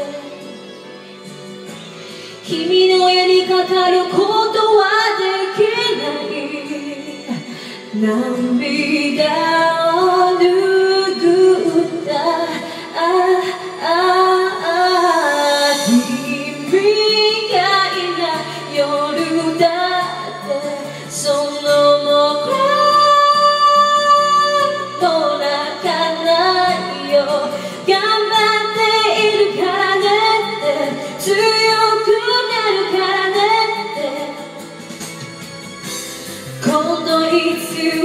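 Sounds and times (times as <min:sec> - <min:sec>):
woman singing pop ballad: 0:00.0 - 0:00.8, 0:02.1 - 0:35.3, 0:36.0 - 0:38.0
backing track: 0:00.0 - 0:38.0.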